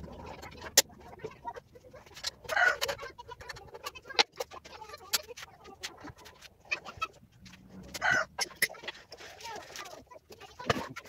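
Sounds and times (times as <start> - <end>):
chicken clucking: 0.2 - 4.6, 5.6 - 8.9.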